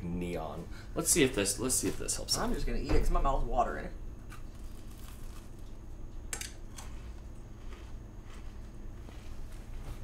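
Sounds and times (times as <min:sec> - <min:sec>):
low room hum: 0:00.0 - 0:10.0
crunchy cookie being chewed: 0:04.3 - 0:05.8.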